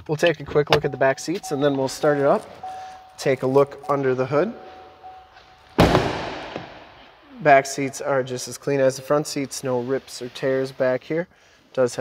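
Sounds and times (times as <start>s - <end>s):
truck door banging shut: 5.8s - 7.1s.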